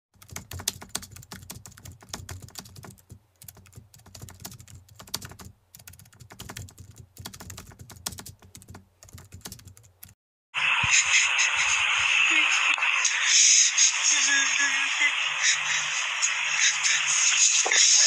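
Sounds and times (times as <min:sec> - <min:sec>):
keyboard typing: 0:00.2 - 0:10.2.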